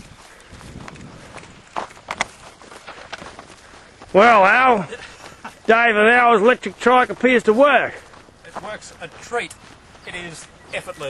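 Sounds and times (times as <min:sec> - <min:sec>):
footsteps on rough grass: 0:00.0 - 0:11.0.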